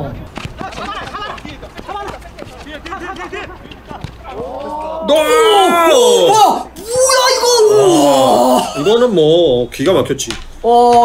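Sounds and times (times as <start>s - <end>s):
men calling and talking: 0.0s - 11.0s.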